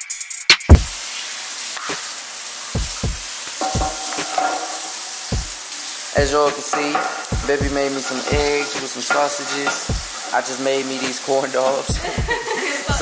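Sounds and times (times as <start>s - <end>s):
food sizzling in a pan: 0.1s - 13.0s
deep kick drums: 0.7s - 0.9s, 2.8s - 4.0s, 5.3s - 5.6s, 7.4s - 7.8s, 9.9s - 10.1s, 11.9s - 13.0s
hip hop music: 2.8s - 13.0s.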